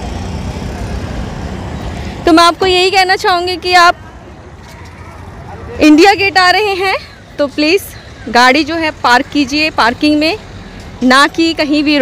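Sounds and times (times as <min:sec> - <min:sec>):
road traffic noise: 0:00.0 - 0:12.0
truck engine rumble: 0:00.0 - 0:12.0.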